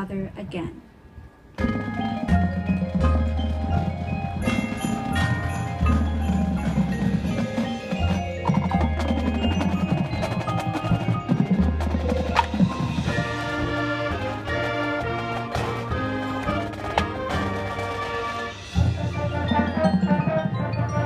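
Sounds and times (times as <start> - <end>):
marching band playing: 1.6 - 21.0
marimbas: 1.6 - 21.0.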